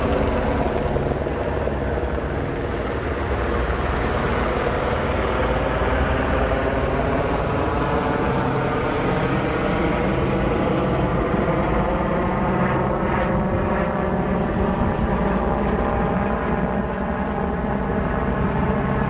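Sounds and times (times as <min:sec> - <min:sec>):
engine drone: 0:00.0 - 0:19.0.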